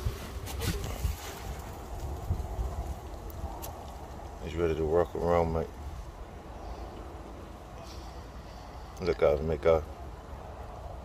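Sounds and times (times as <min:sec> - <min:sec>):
wind rumbling on microphone: 0:00.0 - 0:08.1.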